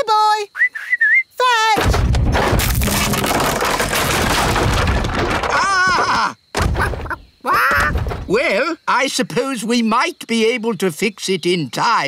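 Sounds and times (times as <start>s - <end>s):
wood crunching and splintering: 1.8s - 8.4s.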